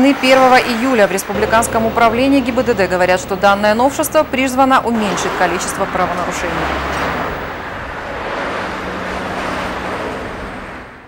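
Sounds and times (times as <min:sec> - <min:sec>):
cars driving by: 0:00.0 - 0:11.0.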